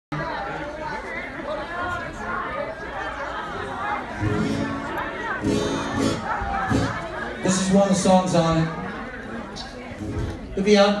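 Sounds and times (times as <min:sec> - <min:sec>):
audience chatter: 0:00.1 - 0:11.0.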